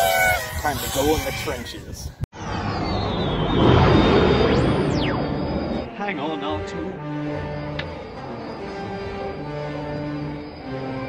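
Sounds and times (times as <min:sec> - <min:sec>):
falling whine of ship passing: 0:02.4 - 0:11.0
rushing engine roar: 0:02.4 - 0:11.0
orchestral music: 0:04.8 - 0:11.0.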